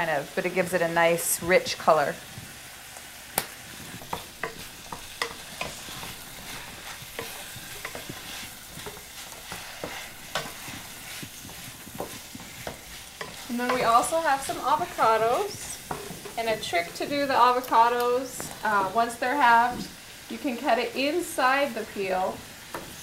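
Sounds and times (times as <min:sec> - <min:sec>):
meat sizzling in a frying pan: 0:00.0 - 0:23.0
spatula scraping and tapping pan: 0:02.9 - 0:20.0, 0:21.9 - 0:23.0.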